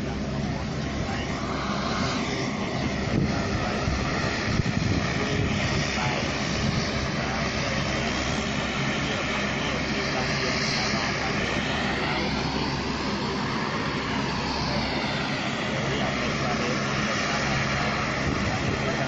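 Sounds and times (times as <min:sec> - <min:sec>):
aircraft engines droning: 0:00.0 - 0:19.0.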